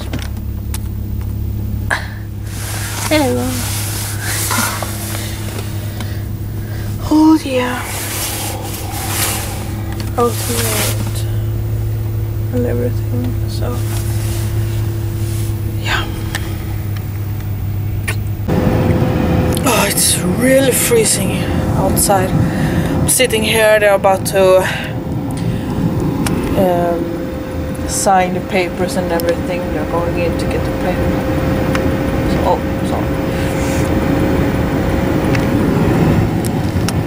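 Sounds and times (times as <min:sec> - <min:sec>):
low car cabin hum: 0:00.0 - 0:37.0
noisy background: 0:00.0 - 0:37.0.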